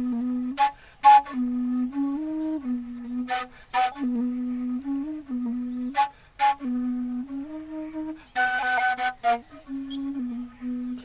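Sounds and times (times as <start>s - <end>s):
flute melody: 0.0s - 11.0s.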